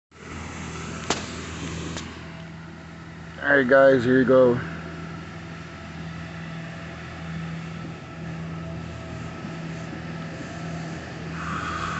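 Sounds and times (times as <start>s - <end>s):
vehicle engine running: 0.1s - 11.9s.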